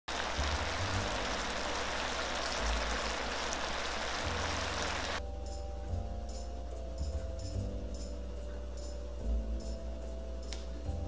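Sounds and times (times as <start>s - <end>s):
chicken wings sizzling in a pan: 0.1s - 5.2s
background music with bass line: 0.1s - 11.0s.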